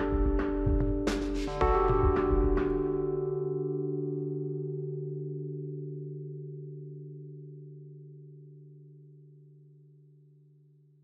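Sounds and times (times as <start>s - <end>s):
low chime-like chord: 0.0s - 10.7s.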